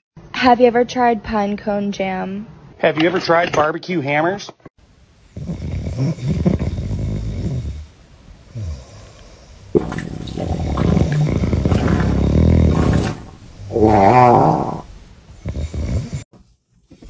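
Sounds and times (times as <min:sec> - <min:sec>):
person snoring loudly: 0:05.4 - 0:07.9, 0:08.5 - 0:16.3.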